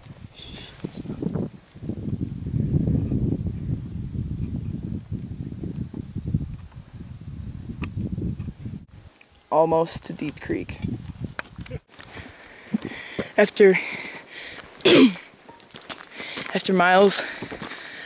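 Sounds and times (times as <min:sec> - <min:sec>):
wind buffeting microphone: 0:00.0 - 0:09.1, 0:09.8 - 0:13.2, 0:17.1 - 0:17.9.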